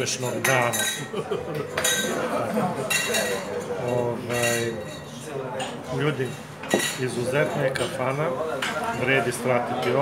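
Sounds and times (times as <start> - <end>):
cutlery and dishes clinking: 0.0 - 9.2
dishes clattering: 0.1 - 7.2.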